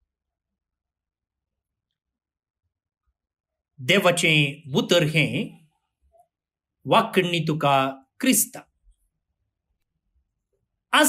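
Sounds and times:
man's voice: 6.9 - 8.6.

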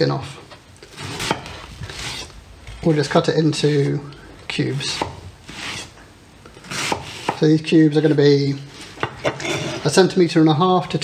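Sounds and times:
knife slicing watermelon: 0.9 - 4.0, 6.6 - 9.9.

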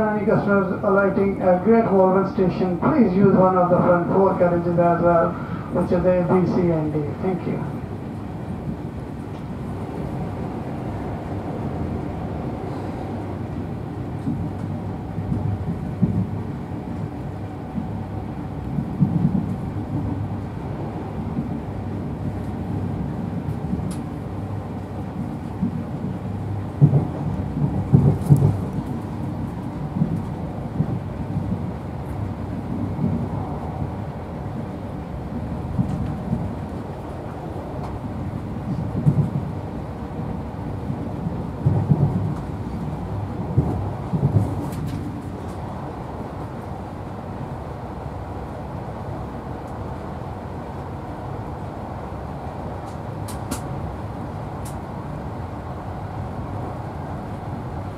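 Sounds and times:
train rumbling on rails: 0.0 - 57.9.

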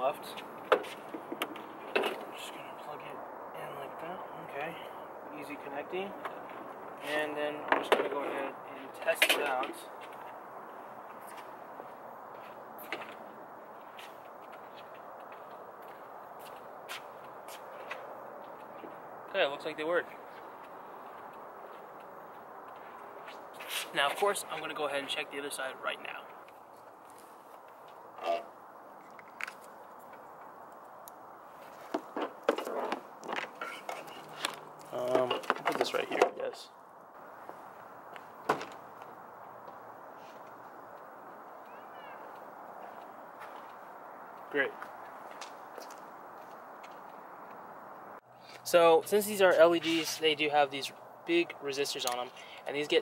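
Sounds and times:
background hiss: 0.0 - 53.0
footsteps: 0.2 - 2.4, 9.2 - 19.2, 20.0 - 24.8, 26.2 - 28.2, 31.4 - 36.4, 37.2 - 48.7.

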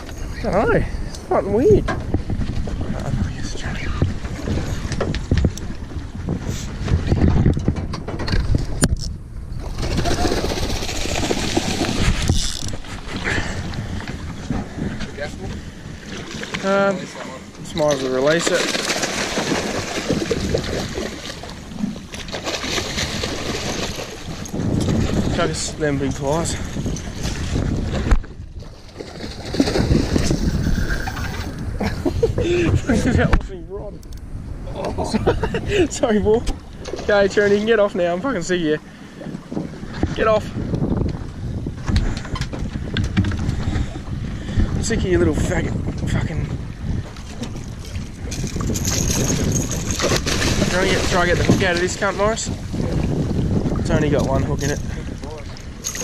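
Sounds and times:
wind noise on microphone: 0.0 - 17.0, 19.1 - 56.0
fish splashing and thrashing: 8.0 - 15.0, 16.0 - 17.1, 17.7 - 25.5, 26.6 - 32.1, 47.0 - 53.6, 54.5 - 56.0
microphone handling noise: 29.5 - 33.5.

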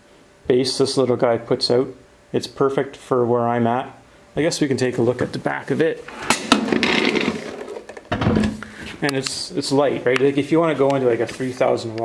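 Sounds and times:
speaker cabinet scraping on concrete: 6.1 - 7.9.

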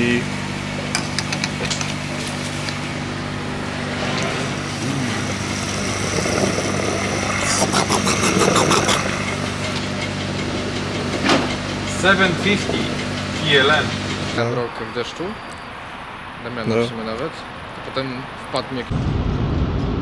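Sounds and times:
fuel pump motor hum: 0.0 - 14.4
fuel rushing into car: 4.4 - 9.2.

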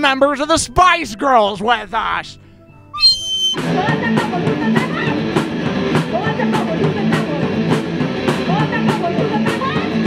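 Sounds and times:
party horn toot: 3.0 - 3.6.

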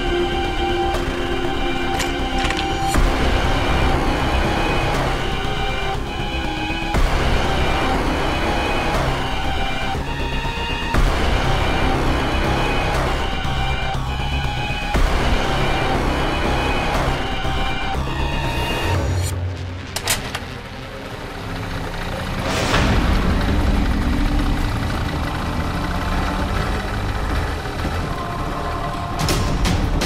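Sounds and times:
background music: 0.0 - 30.0
tense score of held tones: 0.0 - 30.0
motorbike engine running: 20.5 - 30.0.

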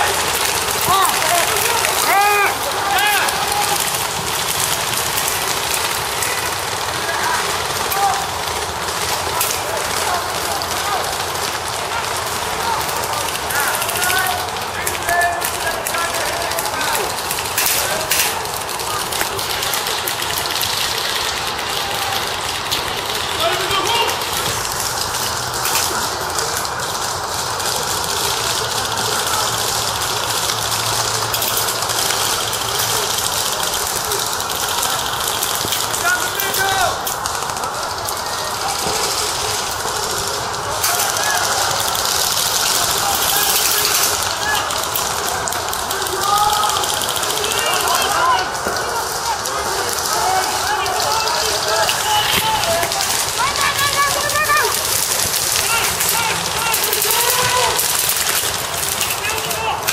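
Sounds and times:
distant voices shouting: 0.0 - 59.9.

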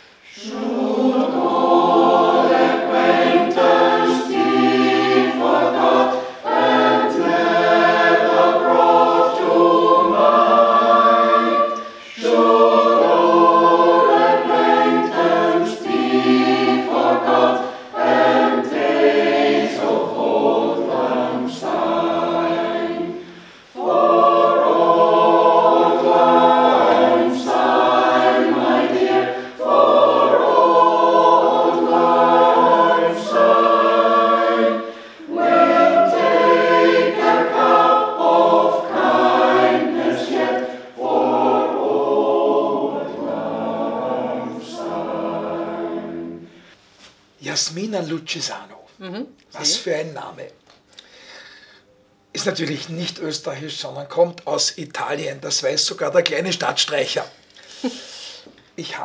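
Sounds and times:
mixed choir singing unaccompanied: 0.0 - 46.7.

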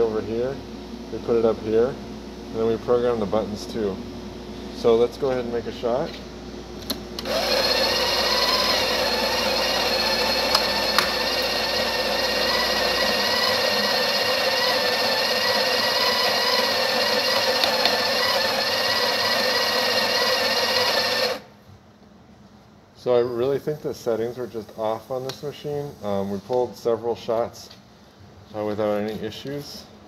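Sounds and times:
coffee grinder motor whine: 7.2 - 21.5.

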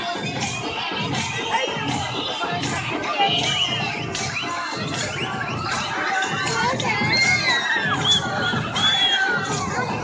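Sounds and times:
children shouting and cheering: 0.0 - 10.0
children squealing: 7.0 - 9.4.

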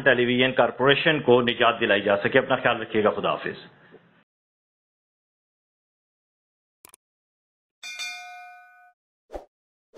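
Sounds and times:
bright bell chime: 7.8 - 9.0.

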